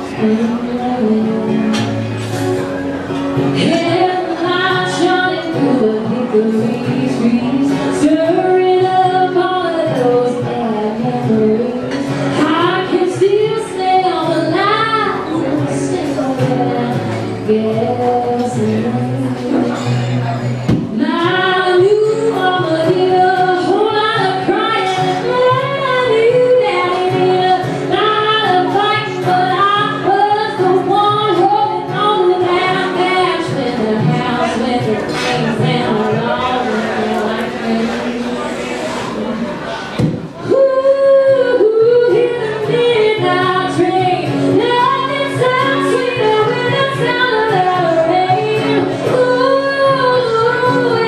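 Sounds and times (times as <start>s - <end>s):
woman singing: 0.0s - 2.6s, 3.4s - 38.8s, 40.4s - 51.0s
acoustic guitar: 0.0s - 51.0s.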